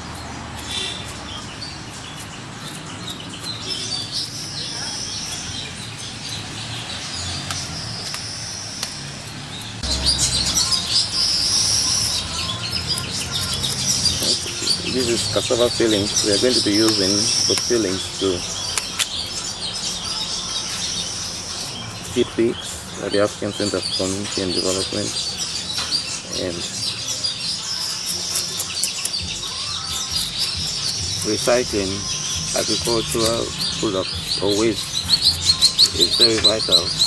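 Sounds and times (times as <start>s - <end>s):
birds chirping: 0.0s - 37.0s
high-pitched bird trill: 0.0s - 37.0s.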